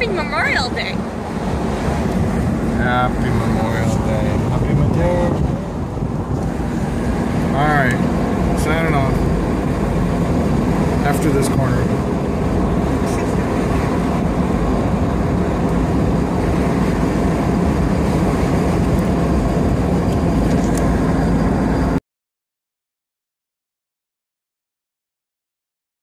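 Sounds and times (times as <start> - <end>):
road and engine noise in car: 0.0 - 22.0.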